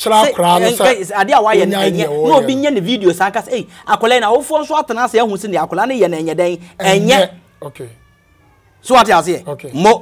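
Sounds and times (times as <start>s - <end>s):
man speaking: 0.0s - 8.0s, 8.8s - 10.0s
man crying out: 0.2s - 3.9s.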